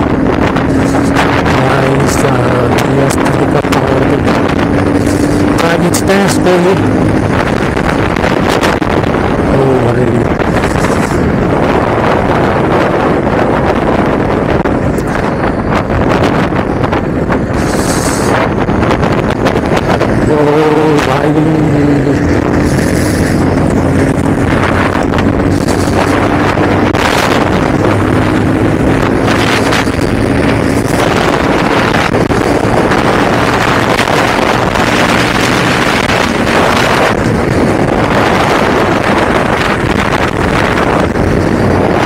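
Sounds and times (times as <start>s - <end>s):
bus passing: 0.0s - 9.6s, 10.2s - 42.0s
motorcycle engine running: 0.0s - 42.0s
wind noise on microphone: 0.0s - 42.0s.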